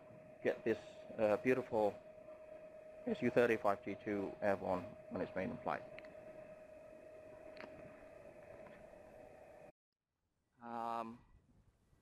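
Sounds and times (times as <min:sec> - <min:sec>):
faint background hum: 0:00.0 - 0:09.7.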